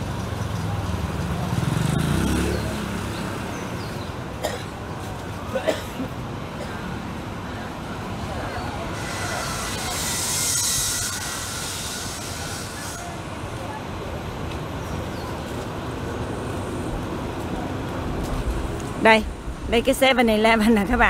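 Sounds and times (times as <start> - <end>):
low traffic rumble: 0.0 - 21.0
hiss: 8.9 - 13.1.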